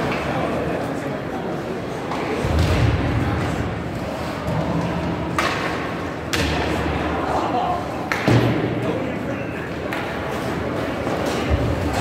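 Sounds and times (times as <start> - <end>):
hockey stick hitting puck: 4.5 - 7.0.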